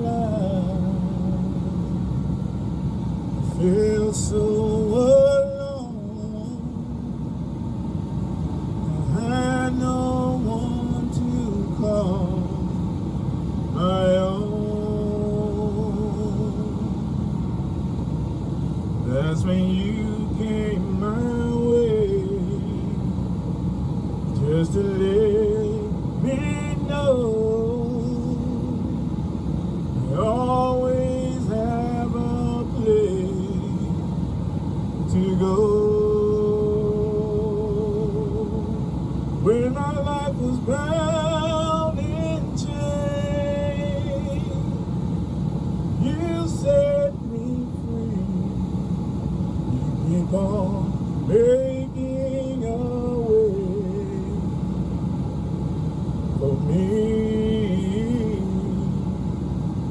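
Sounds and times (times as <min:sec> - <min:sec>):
man singing gospel song: 0:00.0 - 0:01.9, 0:03.4 - 0:07.2, 0:08.8 - 0:12.9, 0:13.7 - 0:17.0, 0:19.0 - 0:23.0, 0:24.3 - 0:28.9, 0:30.0 - 0:34.1, 0:35.0 - 0:38.8, 0:39.4 - 0:44.9, 0:46.0 - 0:48.7, 0:49.7 - 0:54.5, 0:56.4 - 0:59.0
low hum: 0:00.0 - 0:59.9.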